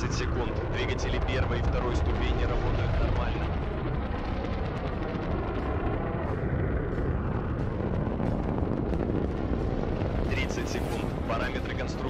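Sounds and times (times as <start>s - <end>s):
rocket engines rumbling: 0.0s - 12.0s.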